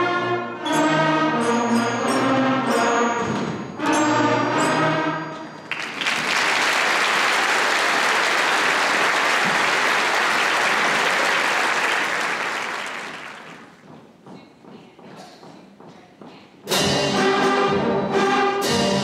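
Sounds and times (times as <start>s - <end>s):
audience applauding: 5.6s - 13.8s.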